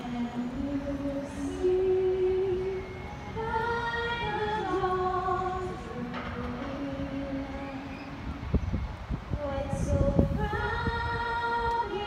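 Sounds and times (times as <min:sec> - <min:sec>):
woman singing: 0:00.0 - 0:07.9, 0:09.4 - 0:12.0.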